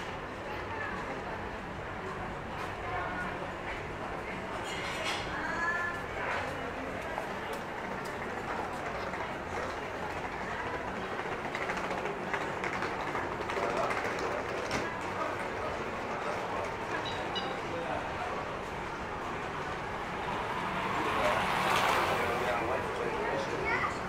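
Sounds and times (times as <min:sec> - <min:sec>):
indistinct chatter of passers-by: 0:00.0 - 0:24.0.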